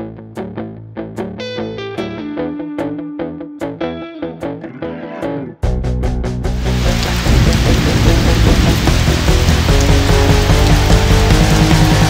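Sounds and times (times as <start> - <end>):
loud rock music: 0.0 - 12.0.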